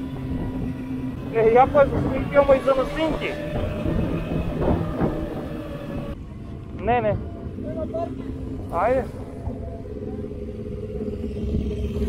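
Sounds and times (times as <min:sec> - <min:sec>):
motorcycle engine running: 0:00.0 - 0:12.0
rumbling wind noise on microphone: 0:00.0 - 0:12.0.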